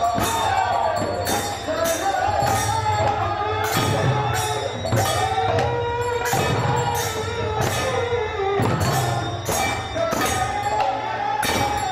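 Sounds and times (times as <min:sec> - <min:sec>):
khol drums: 0:00.0 - 0:11.9
metal percussion strikes: 0:00.0 - 0:11.9.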